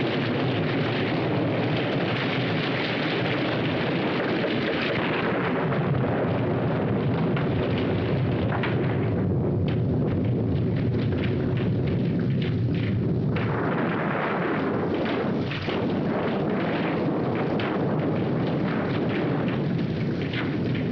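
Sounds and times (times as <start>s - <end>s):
heavy rain falling: 0.0s - 20.9s.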